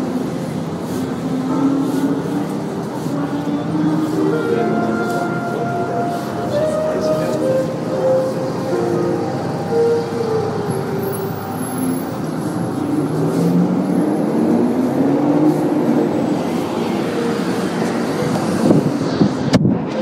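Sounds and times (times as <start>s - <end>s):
steady traffic rumble: 0.0s - 20.0s
vehicles passing: 0.0s - 20.0s.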